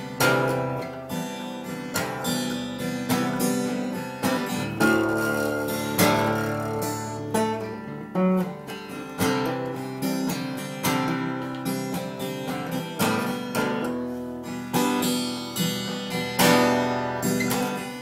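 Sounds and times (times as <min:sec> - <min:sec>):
acoustic guitar strummed chords: 0:00.0 - 0:18.0.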